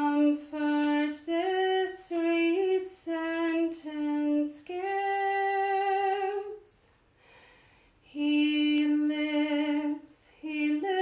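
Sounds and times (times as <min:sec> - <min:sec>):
woman singing a hymn solo: 0:00.0 - 0:06.9, 0:08.1 - 0:11.0.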